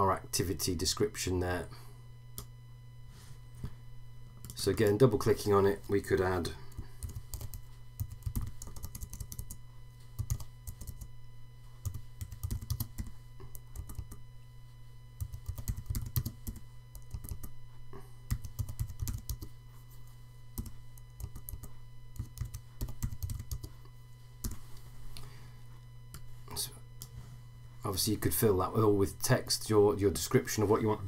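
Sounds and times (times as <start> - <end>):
steady low hum: 0.0 - 31.0
typing on computer keyboard: 7.0 - 9.5, 10.2 - 11.1, 11.8 - 13.1, 13.7 - 14.2, 15.2 - 17.5, 18.3 - 19.5, 20.6 - 23.7.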